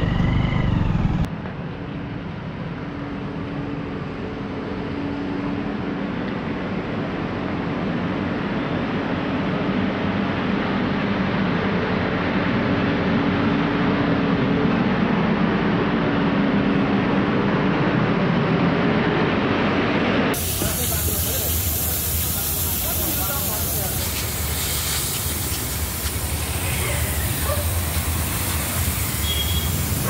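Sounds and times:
road roller diesel engine: 0.0 - 30.0
pressure-washer jet spraying: 20.4 - 30.0.

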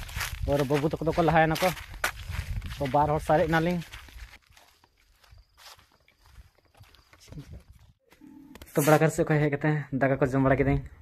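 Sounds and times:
footsteps on dry grass: 0.0 - 9.0.

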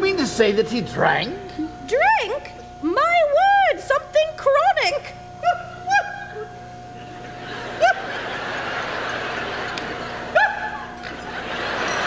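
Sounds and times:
audience laughing: 6.0 - 12.0.

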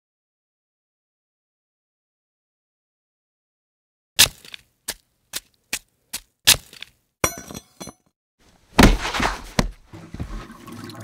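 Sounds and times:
sharp cracking impacts: 4.2 - 7.0.

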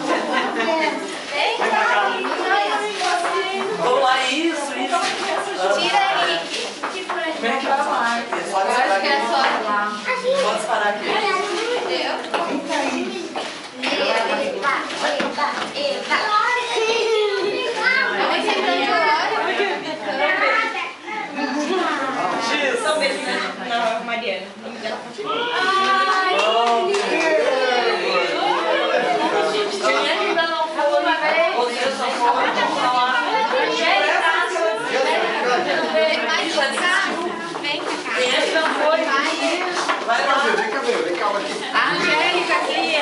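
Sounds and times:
indistinct chatter of voices: 0.0 - 43.0
children's high voices: 10.0 - 22.3, 25.2 - 31.5.

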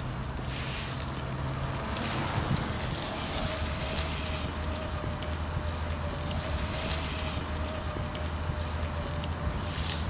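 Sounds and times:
footsteps on asphalt: 0.0 - 10.0
traffic hum: 0.0 - 10.0.

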